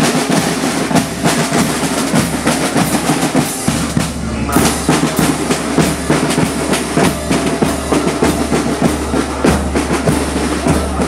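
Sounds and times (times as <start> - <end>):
bass drums: 0.0 - 11.0
snare drums: 0.0 - 11.0.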